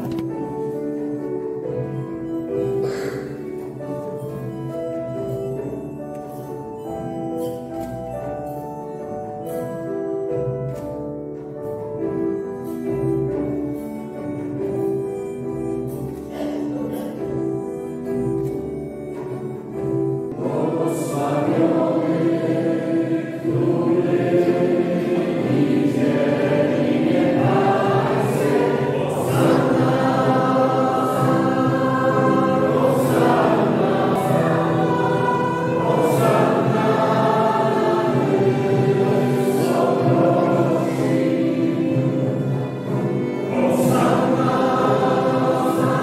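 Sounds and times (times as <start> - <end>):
choir singing a hymn: 0.0 - 9.8, 19.2 - 46.0
instrumental accompaniment: 0.0 - 46.0.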